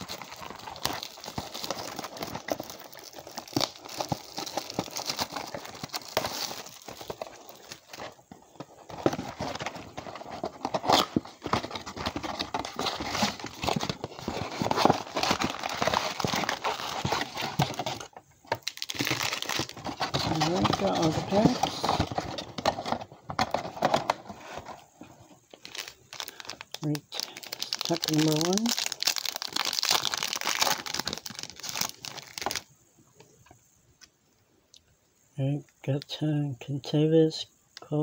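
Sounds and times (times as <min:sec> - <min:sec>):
plastic wrap crinkling: 0:00.0 - 0:24.8, 0:25.4 - 0:32.7.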